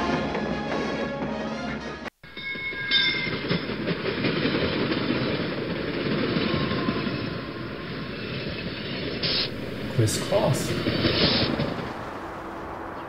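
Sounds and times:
train wheels rumbling on track: 0:02.2 - 0:13.0.

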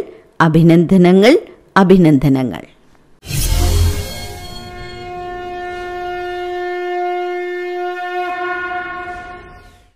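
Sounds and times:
conch shell blown: 0:04.2 - 0:09.7.

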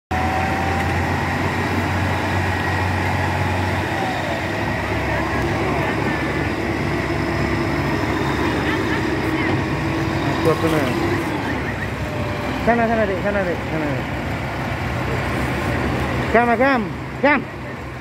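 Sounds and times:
tracked vehicle engine hum: 0:00.1 - 0:18.0.

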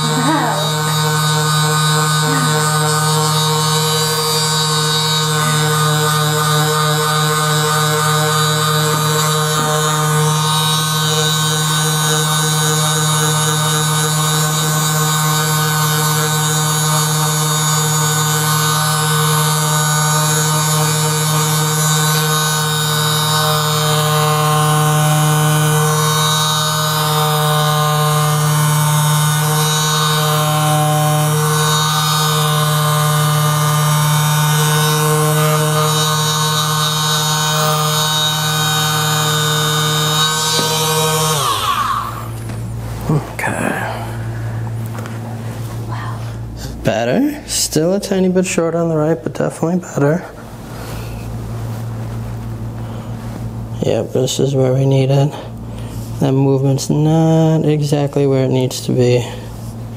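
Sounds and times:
massage gun motor buzzing: 0:00.0 - 0:47.6.

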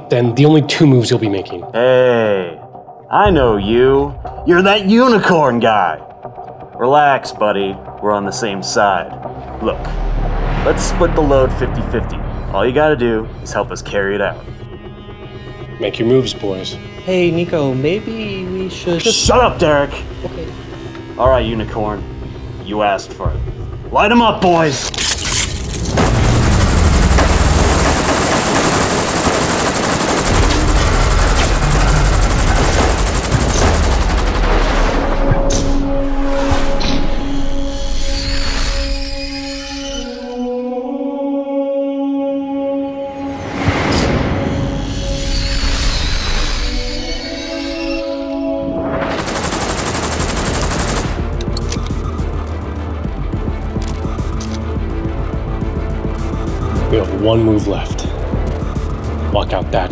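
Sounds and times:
music: 0:00.0 - 0:59.9
automatic gunfire: 0:26.1 - 0:34.5.

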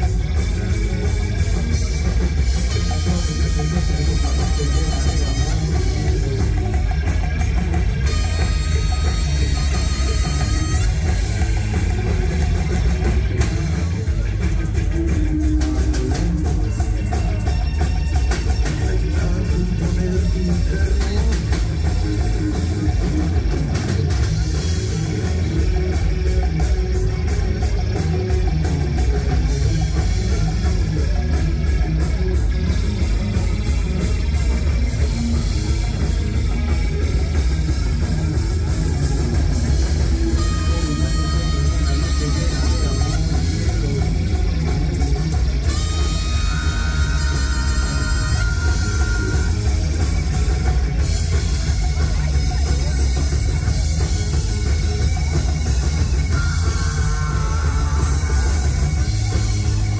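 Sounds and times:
live rock band playing: 0:00.0 - 0:59.9.

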